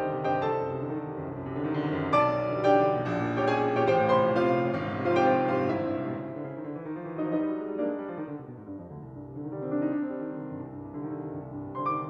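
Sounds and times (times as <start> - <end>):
solo grand piano playing: 0.0 - 12.0.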